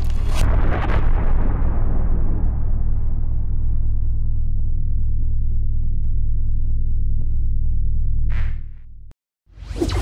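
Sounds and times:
deep rumbling drone: 0.4 - 9.1.

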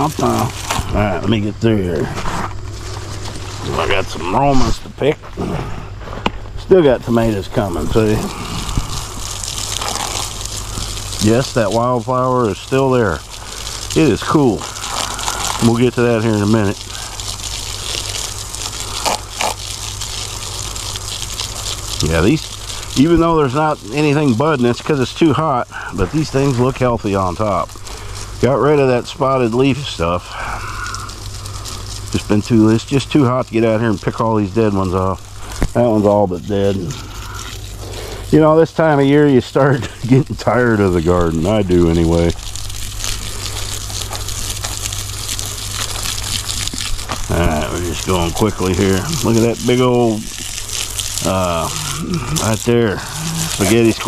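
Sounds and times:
hose water spraying into soil: 0.0 - 54.0.

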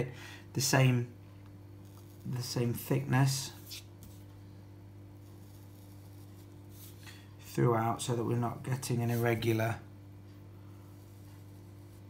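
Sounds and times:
low electrical hum: 0.0 - 12.0
marker drawing on paper: 5.2 - 7.0, 10.9 - 12.0.

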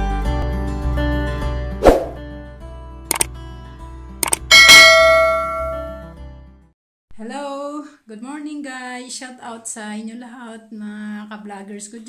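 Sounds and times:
double mouse click: 4.2 - 4.4
bell ding: 4.5 - 6.1.

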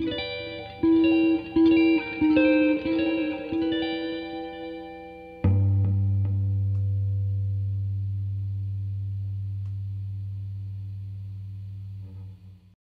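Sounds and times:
electric guitar low note ringing: 0.0 - 12.6.

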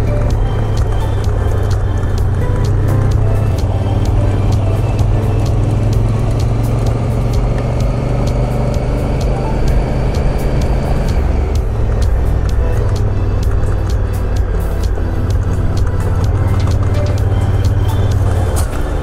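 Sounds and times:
background music: 0.0 - 19.0
gravel ticking: 0.0 - 19.0
motorcycle engine running: 0.0 - 19.0.

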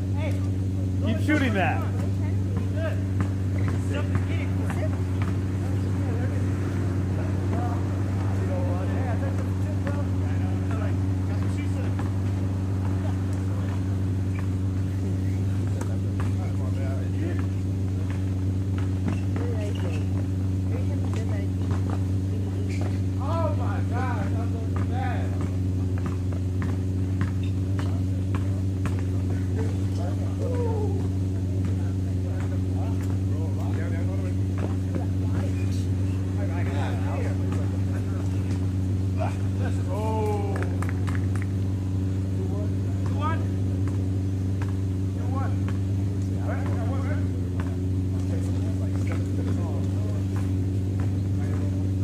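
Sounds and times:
distant voices of players: 0.0 - 52.0
steady low hum: 0.0 - 52.0.

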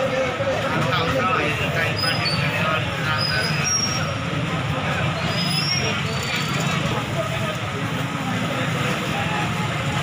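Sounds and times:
people talking indistinctly: 0.0 - 9.7
street background noise: 0.0 - 10.0.

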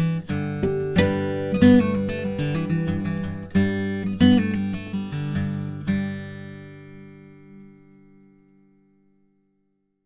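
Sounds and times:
acoustic guitar chord ringing: 0.0 - 9.4.

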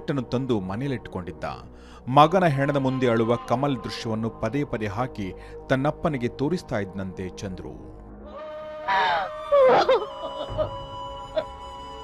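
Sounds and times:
quavering wailing voice: 8.3 - 10.7.

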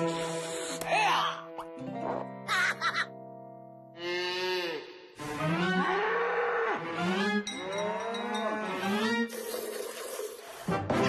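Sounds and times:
cartoon cows mooing: 4.0 - 9.2.

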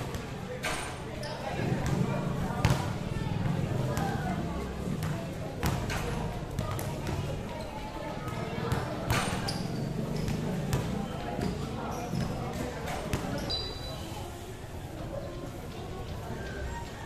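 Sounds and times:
chatter of people: 0.0 - 17.0
basketball bouncing on concrete: 2.6 - 2.9, 5.0 - 6.0.

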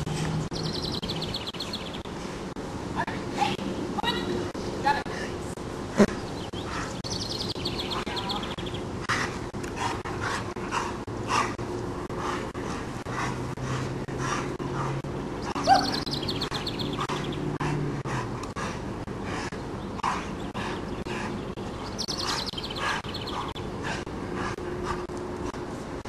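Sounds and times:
dogs breathing and scuffling: 0.0 - 2.7, 5.0 - 26.0
bird trilling: 15.4 - 17.4
dog barking: 15.6 - 16.0.

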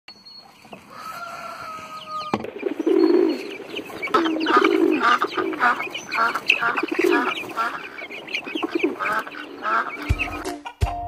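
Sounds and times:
poultry clucking: 0.4 - 10.9.

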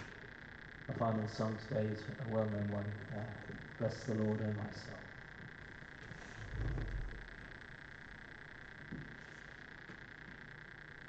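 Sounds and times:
soft low thump: 6.4 - 7.3.

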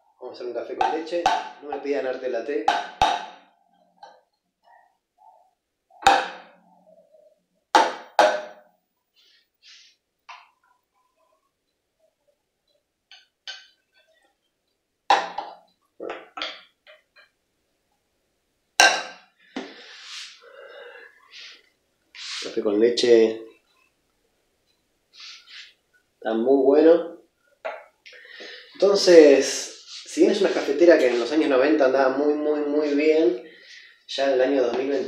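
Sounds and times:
metal pitcher and glass knocking counter: 15.1 - 16.7.

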